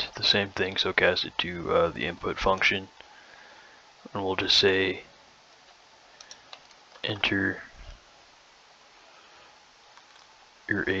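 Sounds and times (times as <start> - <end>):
low steady hiss: 0.0 - 11.0
computer keyboard keystrokes: 10.0 - 10.3.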